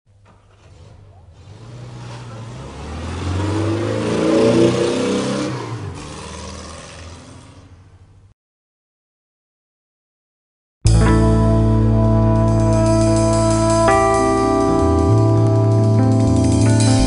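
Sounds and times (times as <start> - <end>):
car engine accelerating: 0.2 - 7.8.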